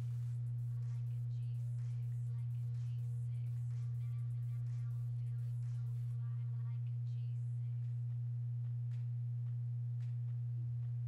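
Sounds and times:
loud steady low hum: 0.0 - 11.0.

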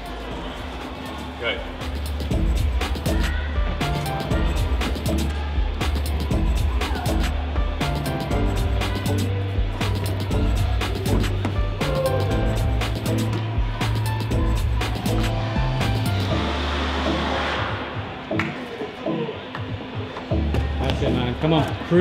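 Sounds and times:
background music with steady beat: 0.0 - 22.0.

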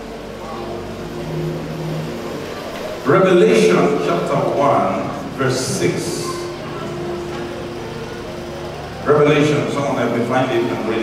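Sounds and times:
held low tone: 0.0 - 11.0
large hall background noise: 0.0 - 11.0
low steady hum: 0.0 - 11.0.

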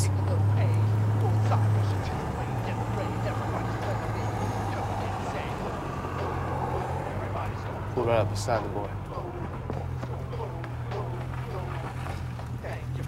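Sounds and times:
car engine humming: 0.0 - 13.0
faint indistinct voices: 0.0 - 13.0.

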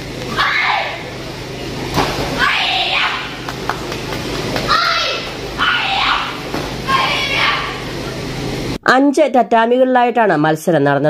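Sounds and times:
shrill kiai shout: 0.3 - 1.0, 2.4 - 3.4, 4.7 - 7.8.

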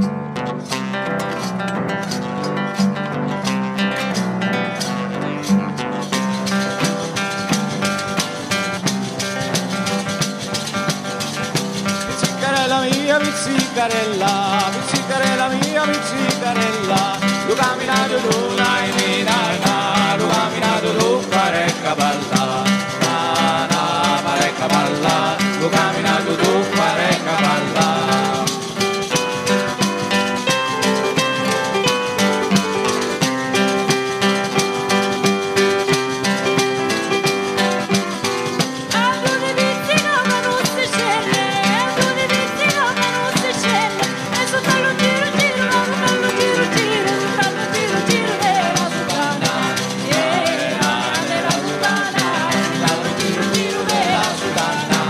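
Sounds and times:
acoustic guitar: 0.0 - 55.0
jingling frame drum: 0.0 - 55.0
keyboard: 0.0 - 55.0
person singing: 12.0 - 33.3, 38.8 - 55.0.

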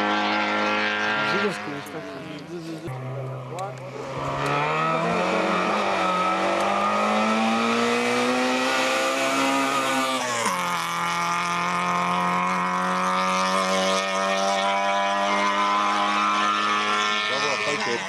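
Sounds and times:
race car engine passing: 0.0 - 18.0.

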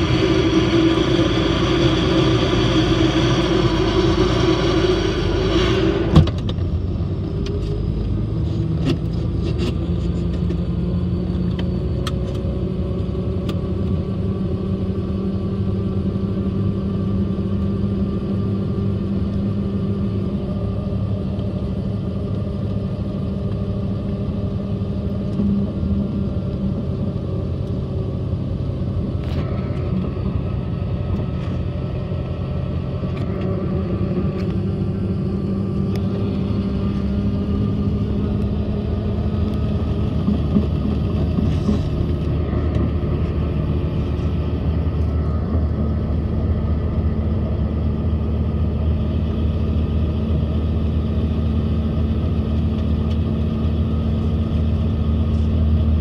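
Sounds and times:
helicopter engine and rotor running: 0.0 - 56.0.

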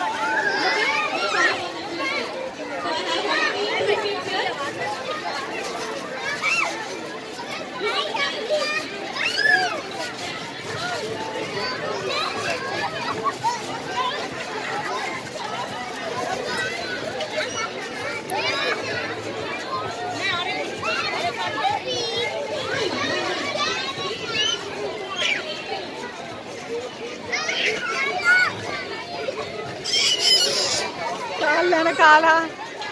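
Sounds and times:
background babble: 0.0 - 32.9
children calling and chattering: 0.0 - 32.9.

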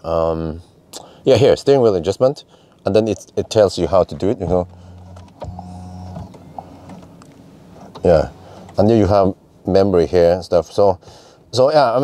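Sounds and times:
electric motor humming: 4.5 - 7.1.

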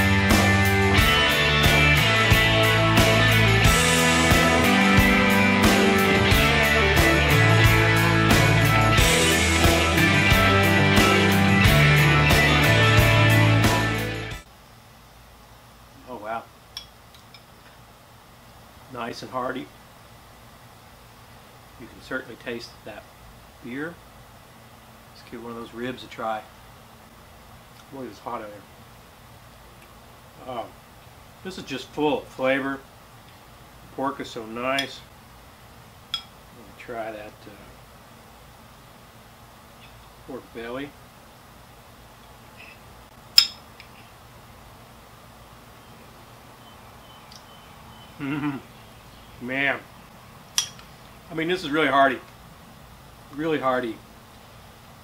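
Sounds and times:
background music: 0.0 - 14.4
man's short vocal sound: 48.2 - 48.7.

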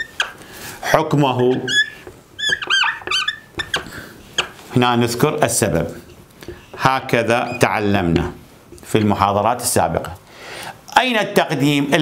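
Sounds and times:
marker squeaking on whiteboard: 0.0 - 4.7, 7.3 - 7.9.

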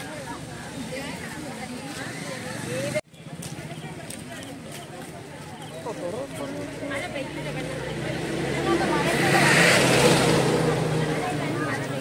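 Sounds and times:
crowd chatter: 0.0 - 12.0
vehicle passing close by: 6.9 - 12.0.

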